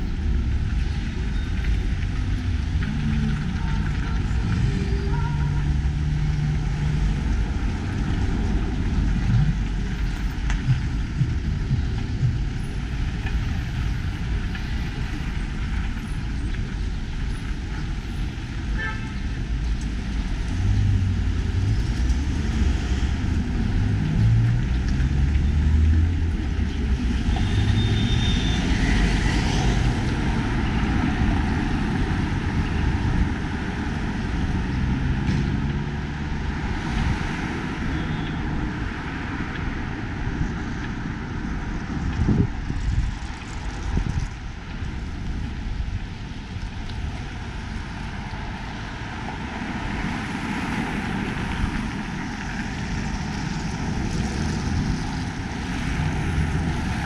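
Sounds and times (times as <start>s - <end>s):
cars and truck passing: 0.0s - 57.0s.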